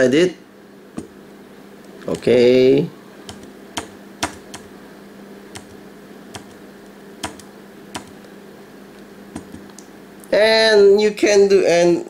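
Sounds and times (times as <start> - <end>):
steady low hum: 0.0 - 10.7
keyboard clicks: 2.0 - 2.3, 3.3 - 4.7, 5.6 - 5.8, 6.4 - 6.6, 7.2 - 8.2, 9.4 - 9.8.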